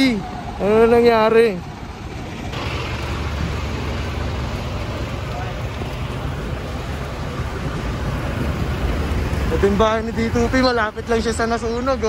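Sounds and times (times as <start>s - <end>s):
fire truck engine rumbling: 0.0s - 12.0s.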